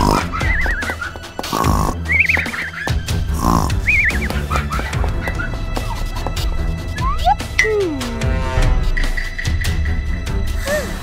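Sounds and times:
cartoon snoring: 0.0s - 0.3s, 1.4s - 2.0s, 3.3s - 3.9s
background music: 0.0s - 11.0s.

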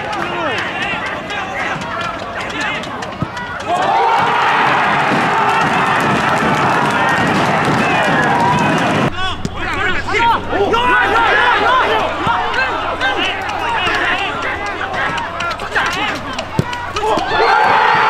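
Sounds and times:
crowd cheering and yelling: 0.0s - 18.0s
stadium crowd shouting: 0.0s - 18.0s.

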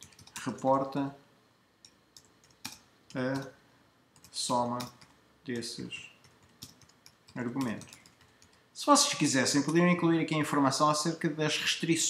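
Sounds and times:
keystrokes on computer keyboard: 0.0s - 0.6s, 1.8s - 3.5s, 4.2s - 8.6s.

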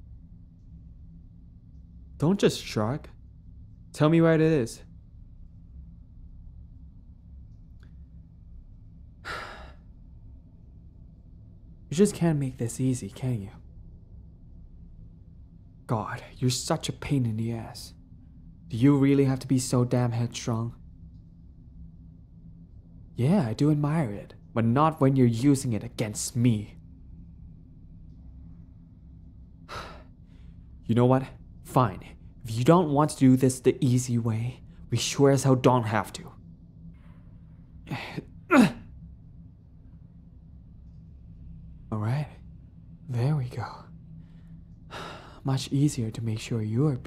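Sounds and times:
faint low hum: 0.0s - 47.0s
speech: 2.2s - 3.2s, 3.9s - 4.9s, 11.9s - 13.6s, 15.9s - 18.0s, 18.7s - 20.8s, 23.2s - 26.8s, 30.8s - 36.4s, 37.9s - 38.8s, 41.9s - 42.4s, 43.0s - 43.9s, 45.4s - 47.0s
man sighing: 9.2s - 9.8s.

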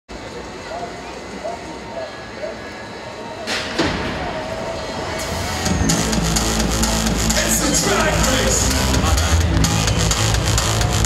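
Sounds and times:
music with a beat: 5.6s - 11.0s.

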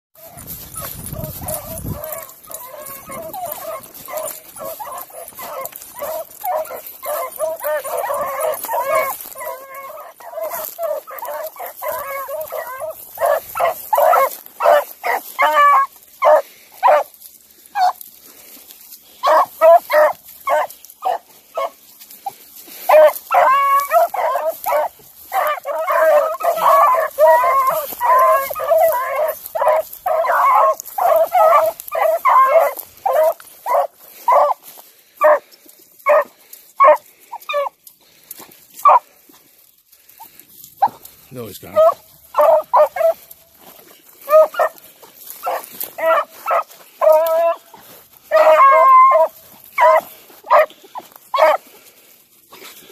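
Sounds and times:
dogs baying: 0.2s - 52.9s.

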